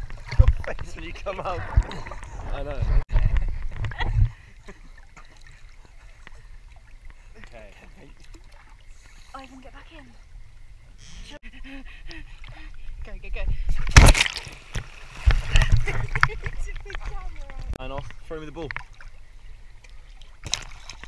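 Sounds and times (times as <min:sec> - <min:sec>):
pool water splashing: 0:00.0 - 0:02.8, 0:04.5 - 0:11.2, 0:13.9 - 0:21.0.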